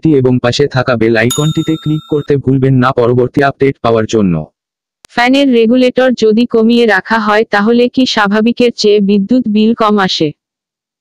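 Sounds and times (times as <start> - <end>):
bell chime ding: 1.3 - 2.5.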